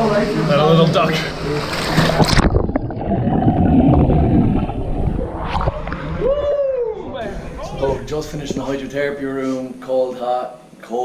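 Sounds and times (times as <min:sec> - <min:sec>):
water splashing: 0:00.0 - 0:09.4
underwater churning and bubbling: 0:01.3 - 0:09.2.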